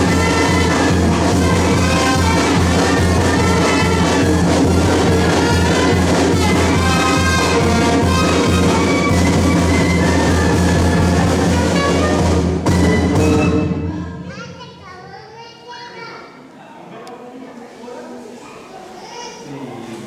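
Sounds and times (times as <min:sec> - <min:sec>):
children's voices: 0:00.0 - 0:07.6, 0:13.9 - 0:17.0, 0:18.3 - 0:20.0
people's voices: 0:00.0 - 0:09.3, 0:13.8 - 0:20.0
brass band with drums playing: 0:00.0 - 0:14.2.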